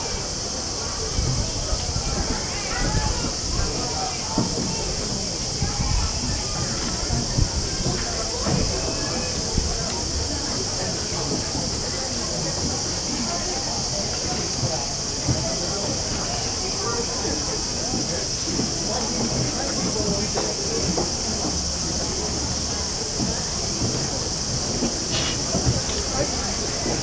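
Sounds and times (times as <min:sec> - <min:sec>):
cicadas droning: 0:00.0 - 0:27.0
crowd murmur: 0:00.0 - 0:27.0.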